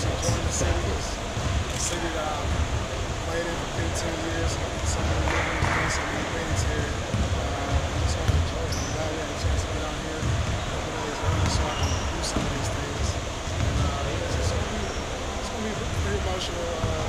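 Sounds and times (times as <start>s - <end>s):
man speaking: 0.0s - 2.6s, 3.2s - 17.0s
basketballs bouncing on gym floor: 0.0s - 14.9s, 15.6s - 17.0s
shoe squeaks: 8.6s - 9.2s, 10.6s - 12.6s, 14.7s - 15.1s.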